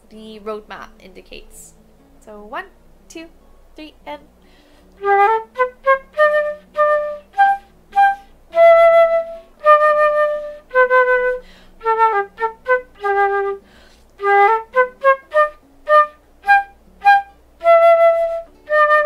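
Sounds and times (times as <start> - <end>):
player breathing: 4.4 - 5.0, 11.4 - 11.8, 13.6 - 14.1
concert flute playing: 5.0 - 19.0.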